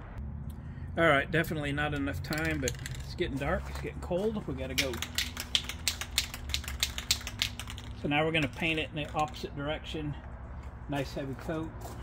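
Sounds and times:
spray can rattling: 2.2 - 3.2, 4.6 - 9.5.

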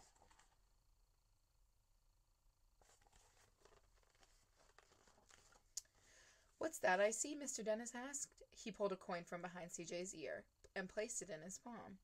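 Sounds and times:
book pages rustling: 0.0 - 0.6, 2.8 - 5.8.

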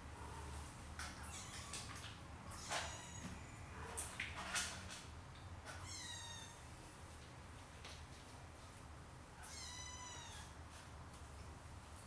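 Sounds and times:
kitten meowing: 5.8 - 6.6, 9.4 - 10.5.

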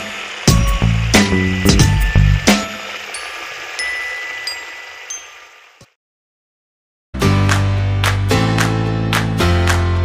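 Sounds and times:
light high chiming dings: 3.1 - 5.7.

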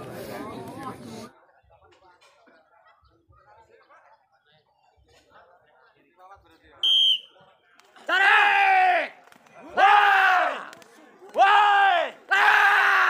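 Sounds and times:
shrill whistle: 6.8 - 7.4
men shouting long calls: 9.8 - 10.7.

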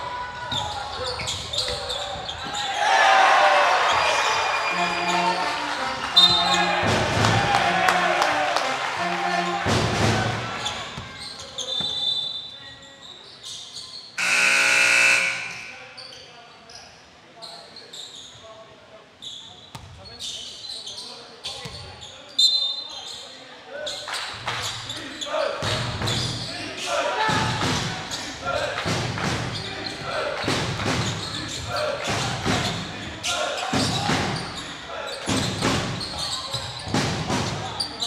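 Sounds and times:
players' voices: 0.0 - 38.0
sneaker squeaks: 0.5 - 2.8, 3.9 - 6.7, 10.6 - 18.6, 19.2 - 26.6, 31.0 - 38.0
buzzing horn: 14.2 - 15.8.

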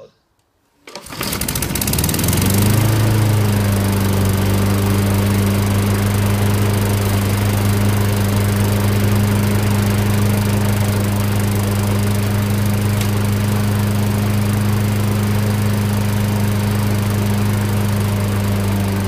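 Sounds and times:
lawnmower pull start: 0.8 - 19.0
lawnmower engine running: 0.9 - 19.0.

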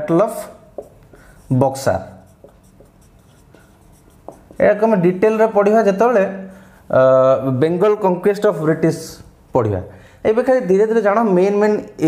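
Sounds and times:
marker pen writing on whiteboard: 0.0 - 5.1.

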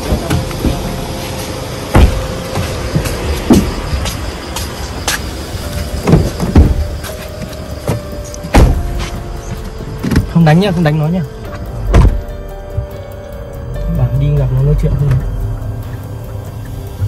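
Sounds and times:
dull heavy thumps against car: 1.9 - 4.1, 5.9 - 9.2, 11.8 - 12.9.

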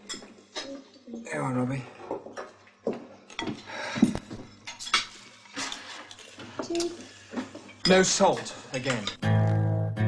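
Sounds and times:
cutlery and crockery clinking: 3.3 - 3.7, 4.6 - 9.2.

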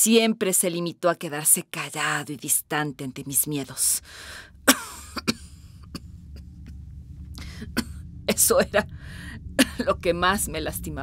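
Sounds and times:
low steady hum: 0.0 - 11.0
breathy exhale: 4.0 - 4.6, 7.3 - 7.8, 8.9 - 9.6
woman coughing: 4.6 - 6.5, 7.4 - 8.9, 9.6 - 10.0.

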